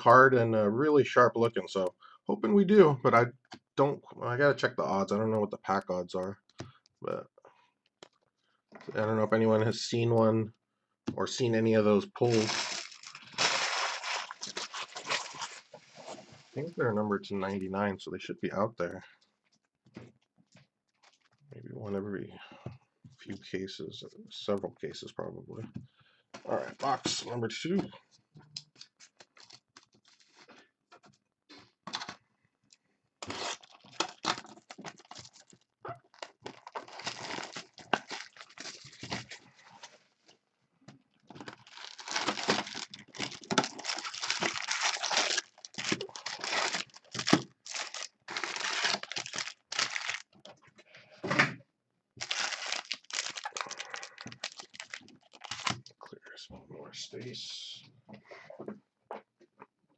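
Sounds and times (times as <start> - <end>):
plastic wrap tearing and crinkling: 12.2 - 16.3, 33.2 - 39.5, 41.3 - 50.4, 52.2 - 55.9
card packs rustling: 12.2 - 16.7, 33.2 - 40.0, 41.3 - 50.4, 52.2 - 55.9.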